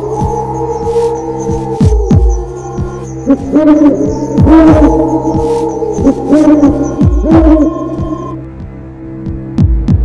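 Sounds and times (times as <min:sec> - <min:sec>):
steady held drone: 0:00.0 - 0:08.4
deep heartbeat-like thuds: 0:00.1 - 0:03.3, 0:04.1 - 0:08.4, 0:09.3 - 0:10.0.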